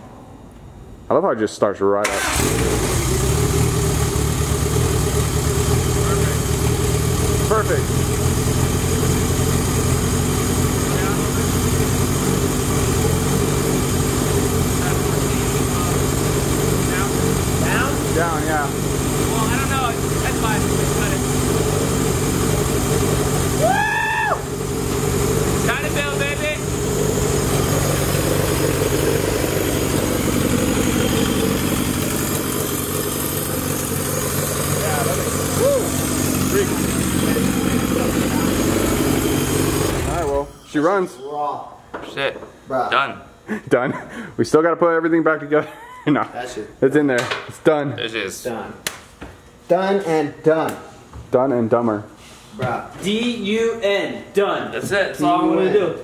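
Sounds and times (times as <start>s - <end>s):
car engine idling: 2.2s - 40.4s
man shouting: 23.5s - 24.5s, 35.0s - 36.0s.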